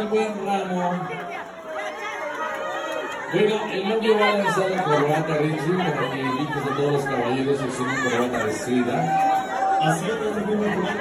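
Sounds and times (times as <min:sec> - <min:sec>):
crowd chattering: 0:00.0 - 0:11.0.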